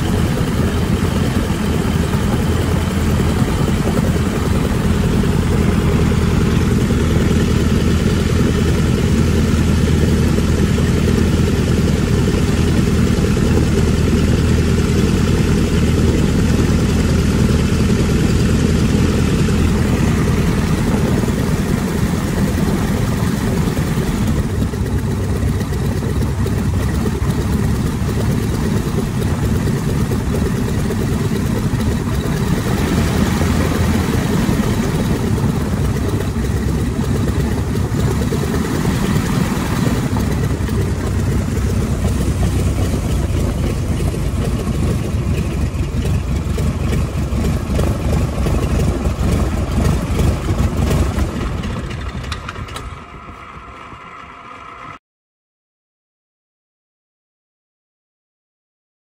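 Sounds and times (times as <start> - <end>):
biplane engine running: 0.0 - 55.0.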